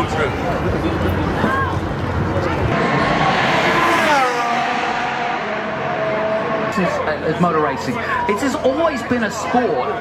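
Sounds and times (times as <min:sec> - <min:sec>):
race car engine passing: 0:02.6 - 0:08.4.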